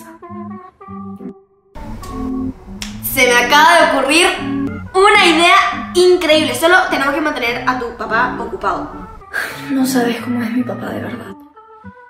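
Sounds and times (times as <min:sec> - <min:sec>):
background music with held notes: 0:00.0 - 0:12.0
sharp snap-like click: 0:02.8 - 0:03.0.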